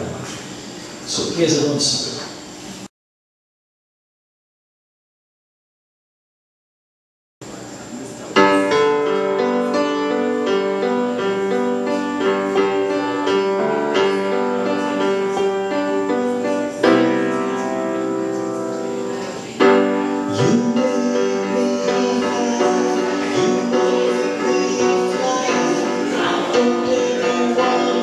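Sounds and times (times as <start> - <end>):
solo piano ballad: 7.5 - 28.0.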